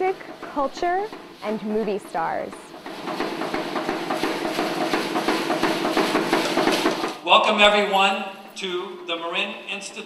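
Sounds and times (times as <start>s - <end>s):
quick irregular percussive hits: 0.0s - 7.6s.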